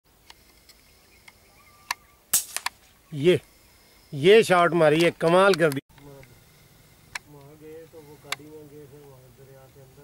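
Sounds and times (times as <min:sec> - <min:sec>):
birds chirping: 0:00.3 - 0:10.0.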